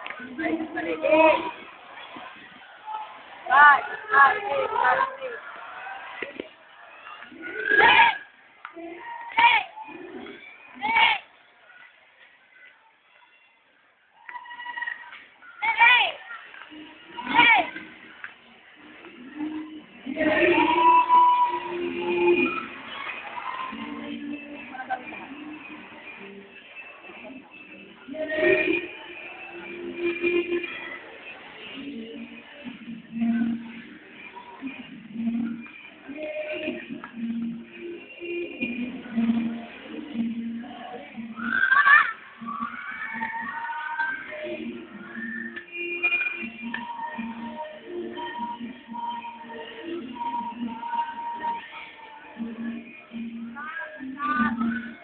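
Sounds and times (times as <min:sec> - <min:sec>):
dance music: 0:00.0 - 0:12.6, 0:14.1 - 0:55.0
loud yell: 0:41.4 - 0:44.2.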